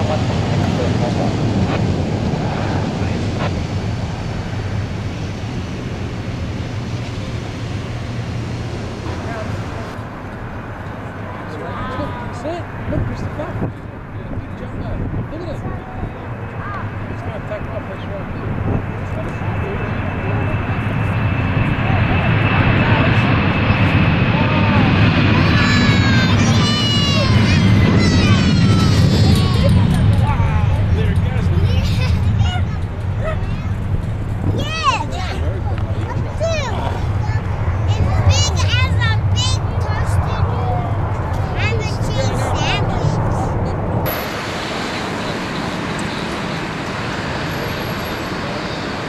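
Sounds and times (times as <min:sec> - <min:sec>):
jet engines at high power: 0:00.0 - 0:49.0
high fan tones dropping in pitch: 0:19.6 - 0:49.0
fan whine: 0:43.8 - 0:49.0.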